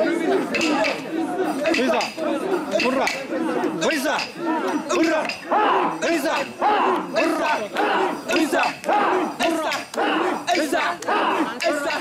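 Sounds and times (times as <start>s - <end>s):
group shouting rhythmic chant: 0.0s - 12.0s.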